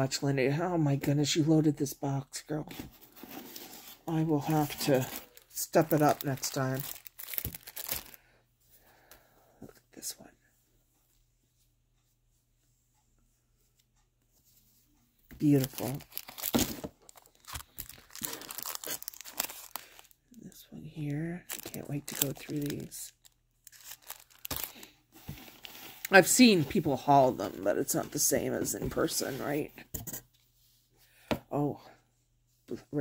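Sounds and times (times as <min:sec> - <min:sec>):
plastic packaging crinkling: 0:03.4 - 0:08.2, 0:15.3 - 0:27.3.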